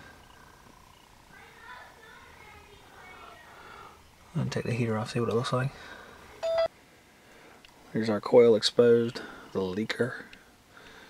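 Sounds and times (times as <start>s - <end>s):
short electronic beep: 6.4s - 6.7s.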